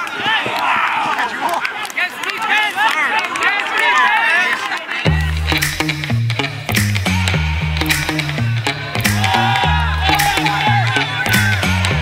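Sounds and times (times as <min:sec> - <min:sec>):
players shouting: 0:00.0 - 0:05.8, 0:06.5 - 0:12.0.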